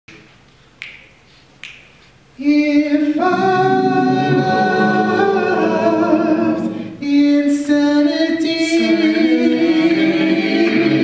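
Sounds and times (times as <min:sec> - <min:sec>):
finger snaps: 0:00.8 - 0:02.1.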